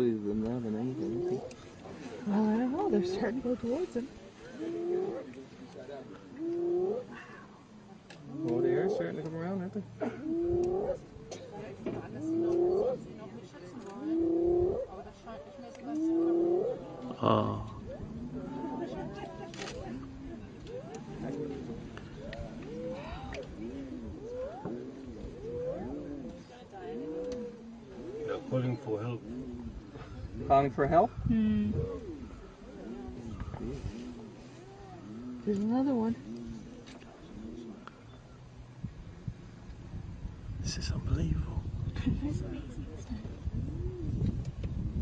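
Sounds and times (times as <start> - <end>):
hyena calling: 20.6 - 28.6.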